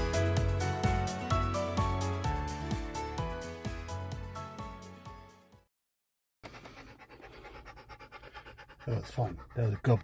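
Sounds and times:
dog panting rapidly: 0:06.4 - 0:10.0.

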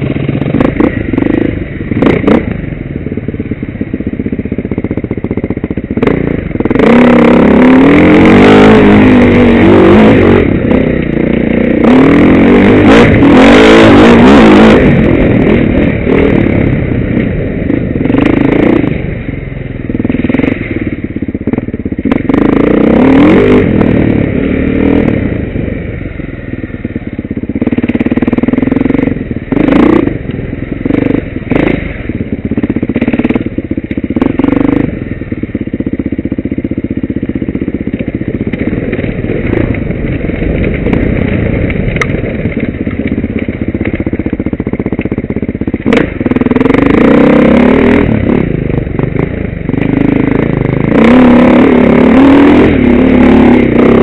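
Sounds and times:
motorcycle clattering over bumps: 0:00.0 - 0:06.9, 0:26.8 - 0:51.0
motorcycle engine revving: 0:00.0 - 0:54.0.

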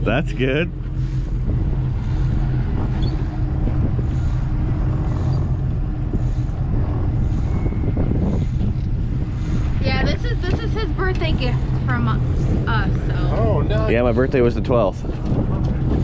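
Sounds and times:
boat engine droning: 0:00.0 - 0:16.0.

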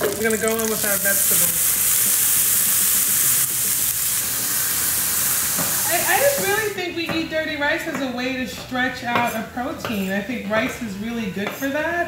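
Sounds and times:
vegetables sizzling in butter: 0:00.0 - 0:06.8.

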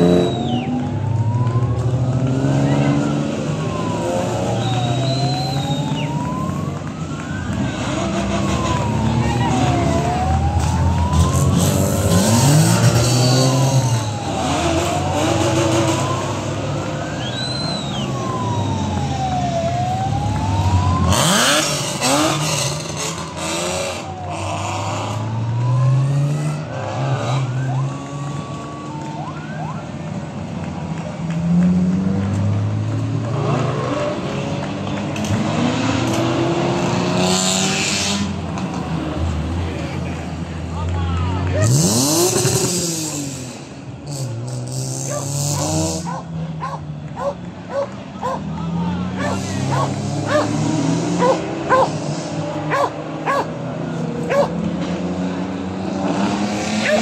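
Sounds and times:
siren wailing: 0:00.0 - 0:30.4, 0:45.1 - 0:52.0
rally car engines revving: 0:00.0 - 0:57.0.

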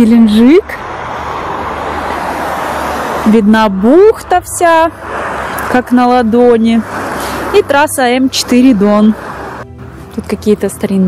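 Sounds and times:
highway traffic passing: 0:00.0 - 0:11.0.

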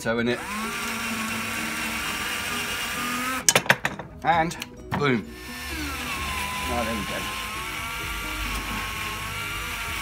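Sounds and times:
cordless drill whining: 0:00.2 - 0:03.5, 0:05.3 - 0:10.0.

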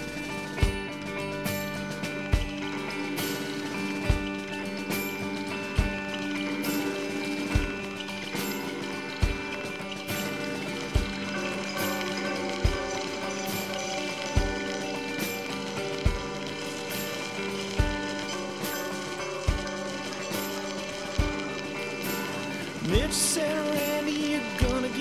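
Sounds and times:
instrumental rock music: 0:00.0 - 0:25.0.

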